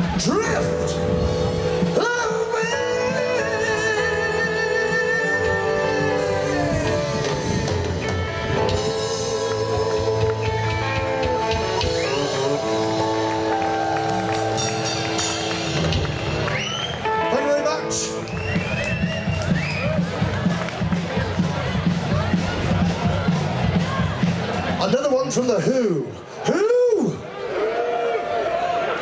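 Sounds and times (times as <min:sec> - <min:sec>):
live rock band playing: 0:00.0 - 0:25.8
person singing with vibrato: 0:01.8 - 0:13.2.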